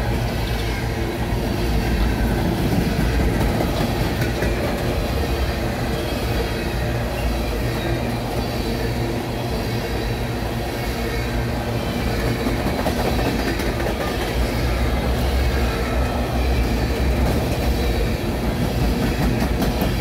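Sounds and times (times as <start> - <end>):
train wheels rumbling on rails: 0.0 - 20.0.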